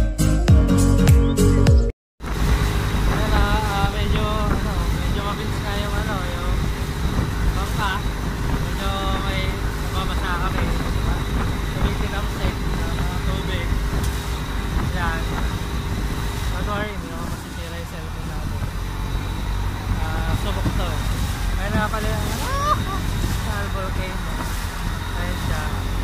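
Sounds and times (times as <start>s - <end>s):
boat engine drone: 2.2s - 26.0s
water splashing against hull: 2.2s - 26.0s
wind rush: 2.2s - 26.0s.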